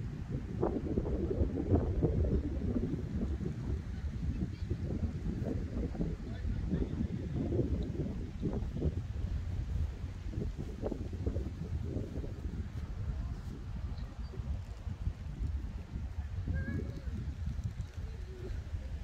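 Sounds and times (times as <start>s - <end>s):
wind rumble on microphone: 0.0s - 19.0s.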